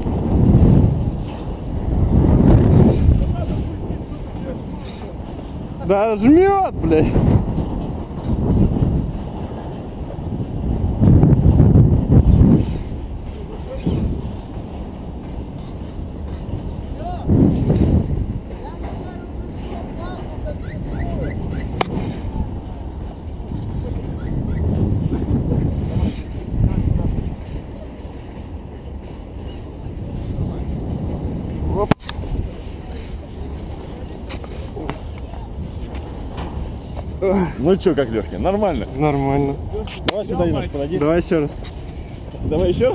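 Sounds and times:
wind rushing over microphone: 0.0s - 42.9s.

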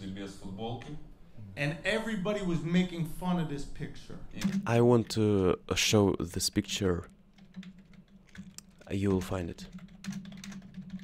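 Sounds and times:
person speaking: 1.4s - 7.2s, 8.4s - 9.8s
typing on computer keyboard: 4.4s - 4.8s, 7.3s - 11.0s.

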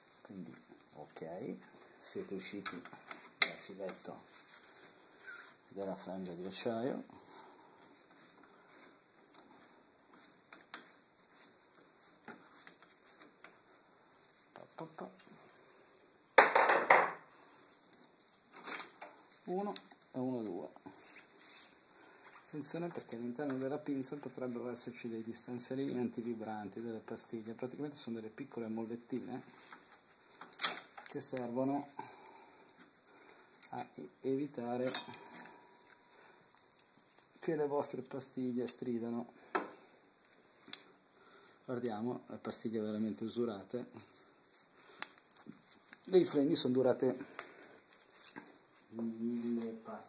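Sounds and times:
low room noise: 0.0s - 50.0s.

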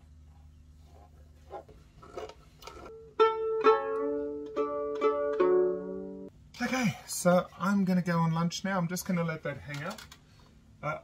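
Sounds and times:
violin strings plucked: 2.8s - 6.3s.

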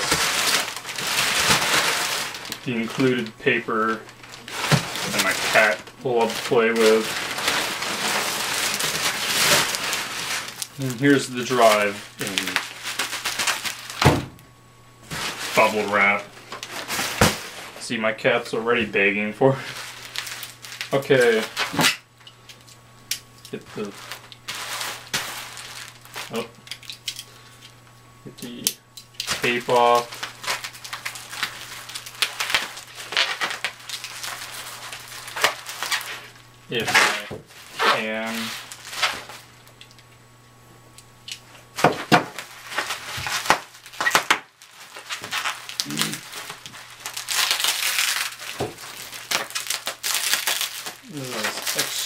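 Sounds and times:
bubble wrap and tape crinkling: 0.0s - 14.4s, 15.0s - 17.9s, 18.8s - 40.2s, 41.2s - 52.0s.

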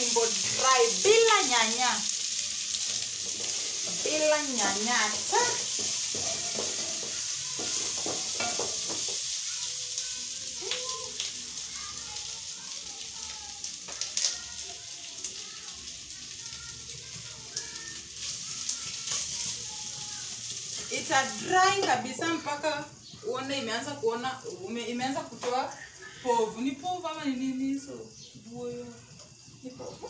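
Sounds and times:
tripe sizzling in a pot: 0.0s - 30.0s.

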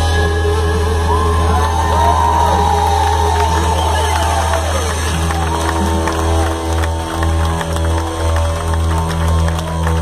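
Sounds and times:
deep bass notes: 0.0s - 10.0s
live rock band playing: 0.0s - 10.0s.

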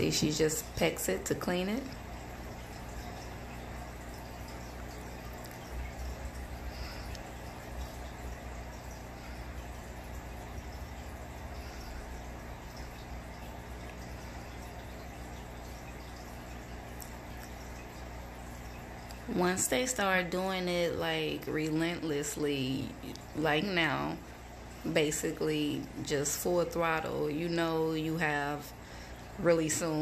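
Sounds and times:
aquarium equipment hum: 0.0s - 30.0s.

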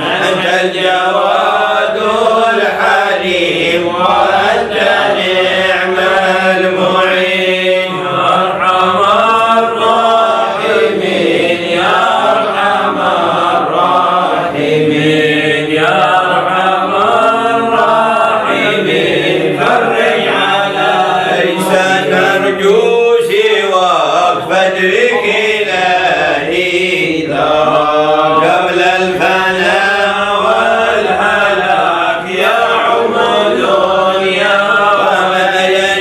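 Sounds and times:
man chanting devotional melody: 0.0s - 36.0s.

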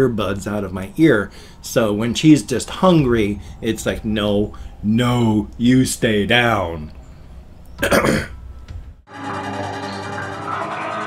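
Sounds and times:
man clearing his throat: 7.8s - 8.4s.

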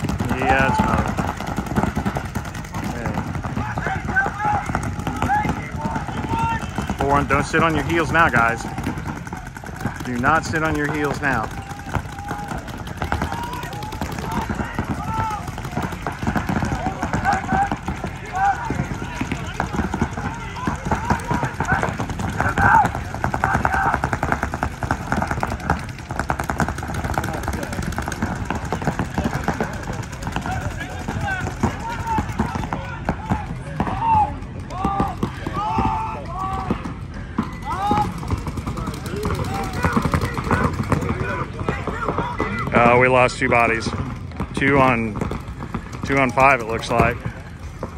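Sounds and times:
people shouting: 0.0s - 43.9s
paintball markers firing: 0.0s - 47.9s.

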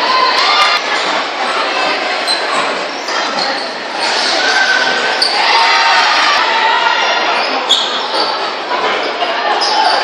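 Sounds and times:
crowd chatter and shouting: 0.0s - 10.0s.

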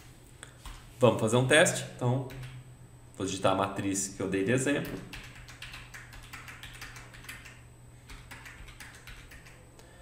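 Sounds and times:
faint steady low hum: 0.0s - 10.0s
computer keyboard keystrokes: 2.3s - 2.6s, 4.8s - 9.6s.

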